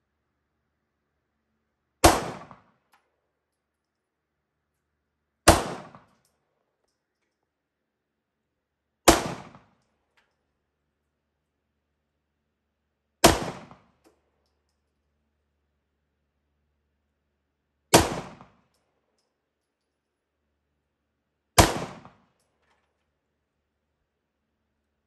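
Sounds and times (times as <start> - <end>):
pistol shot with echo: 2.0 - 2.7, 5.5 - 6.1, 9.0 - 9.7, 13.2 - 13.9, 17.9 - 18.6, 21.6 - 22.2.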